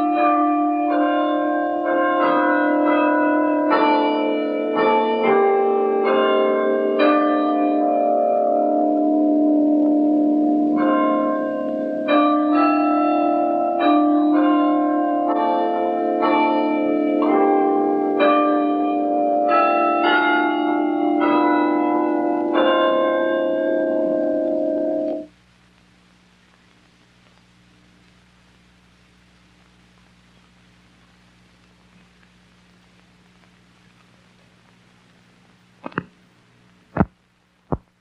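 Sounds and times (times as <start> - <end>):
bells ringing a slow tune: 0.0 - 25.3.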